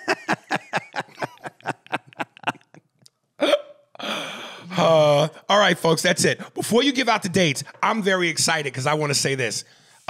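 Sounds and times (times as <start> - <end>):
men laughing into microphones: 0.0 - 2.9.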